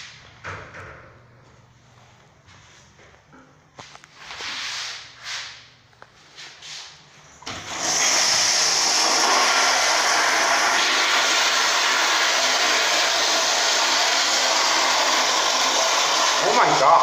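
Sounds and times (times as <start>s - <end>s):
toilet flushing: 7.4s - 17.0s.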